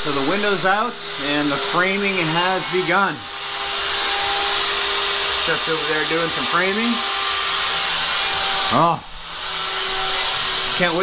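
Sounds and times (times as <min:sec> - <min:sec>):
table saw whirring: 0:00.0 - 0:11.0.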